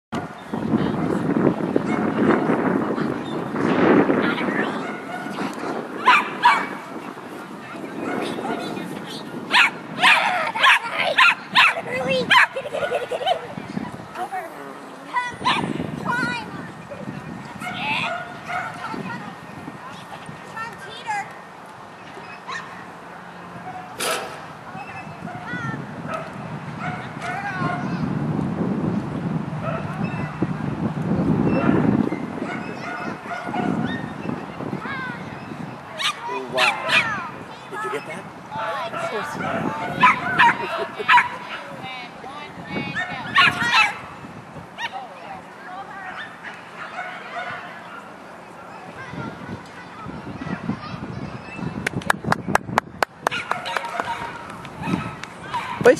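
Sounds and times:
dog barking: 6.0 - 6.8, 9.5 - 12.9, 17.6 - 18.9, 32.4 - 34.1, 36.0 - 37.2, 38.9 - 41.7, 43.0 - 44.0, 46.2 - 48.1, 53.3 - 55.8.

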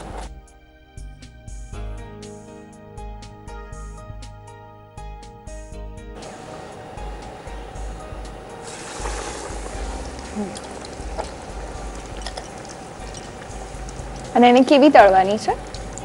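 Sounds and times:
background music: 0.0 - 16.0
food sizzling in hot oil: 6.2 - 16.0.

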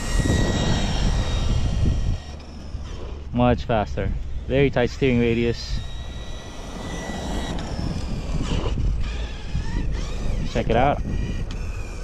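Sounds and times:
low rumble: 0.0 - 11.5
toy truck motor whine: 0.0 - 12.0.

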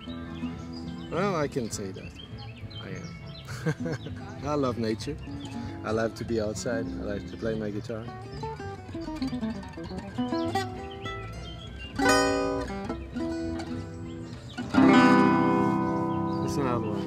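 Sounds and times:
acoustic guitar playing: 0.0 - 17.0.

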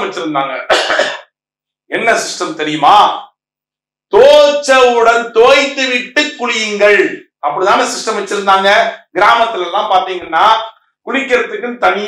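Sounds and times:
man speaking: 0.0 - 1.1, 1.9 - 3.3, 4.1 - 12.0.

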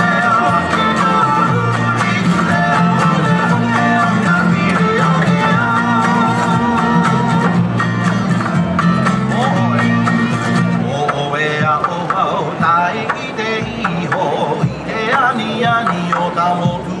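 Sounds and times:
song with plucked guitar over loudspeakers: 0.0 - 17.0.

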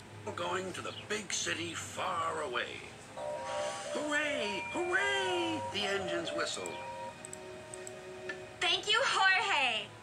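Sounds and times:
cartoon song held notes: 3.2 - 7.6.

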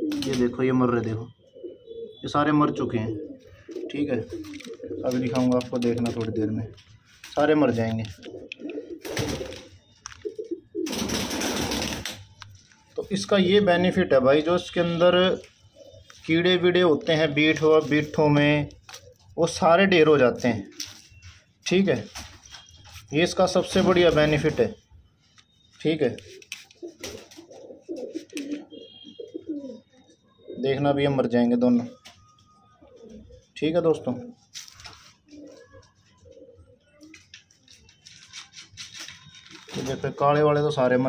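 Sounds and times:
pigeons cooing: 0.0 - 7.3, 8.1 - 12.1, 14.4 - 19.5, 26.2 - 31.0, 31.8 - 37.5.

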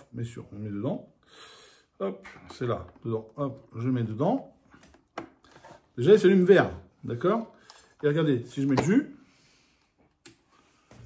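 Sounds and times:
faint handling sounds: 7.1 - 11.0.

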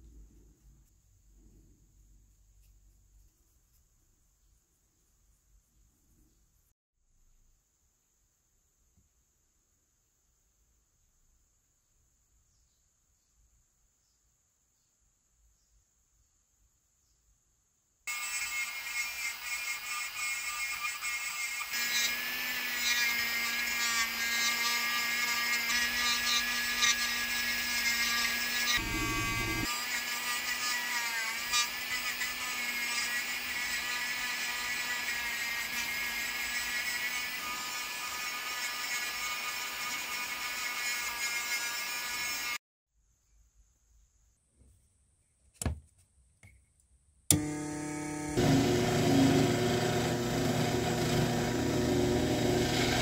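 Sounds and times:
rotary tool whining: 18.1 - 42.6, 47.3 - 53.0.

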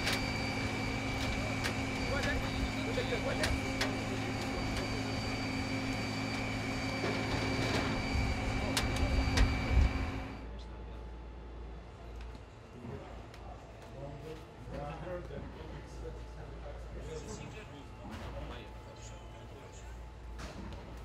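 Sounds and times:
turbine whine: 0.0 - 21.0.

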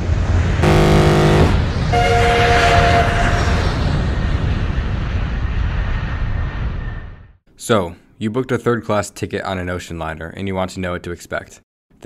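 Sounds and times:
higher horn chord: 0.6 - 3.1
deep horn blast: 0.6 - 3.8.

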